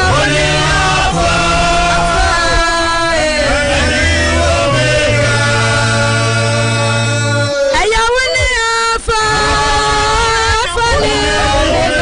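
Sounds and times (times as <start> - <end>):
group singing worship song: 0.0 - 7.9, 8.5 - 12.0.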